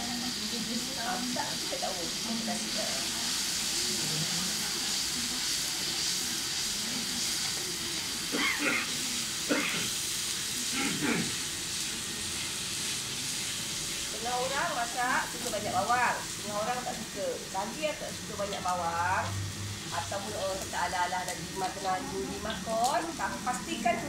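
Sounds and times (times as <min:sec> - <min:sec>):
background talk: 0:00.0 - 0:19.3, 0:19.9 - 0:24.0
onions sizzling in oil: 0:00.0 - 0:24.0.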